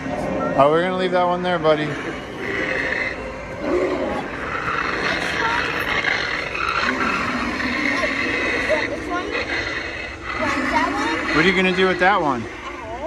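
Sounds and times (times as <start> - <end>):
spooky voice: 0.0 - 13.0
wavering gliding tones: 0.0 - 13.0.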